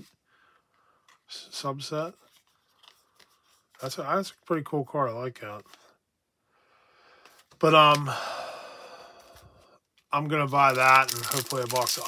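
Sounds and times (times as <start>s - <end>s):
man sighing: 7.9s - 9.6s.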